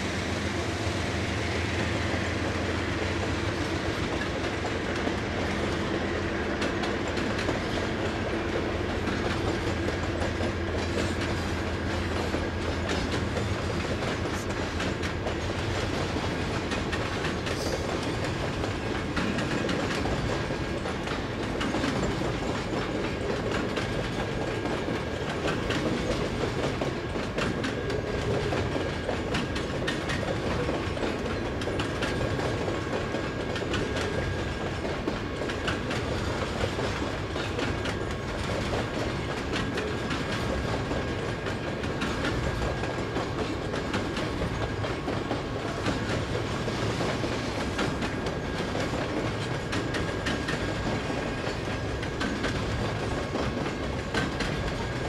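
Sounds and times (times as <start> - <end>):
steel wheels rumbling on rail: 0.0 - 55.0
wheels clicking over rail joints: 1.8 - 55.0.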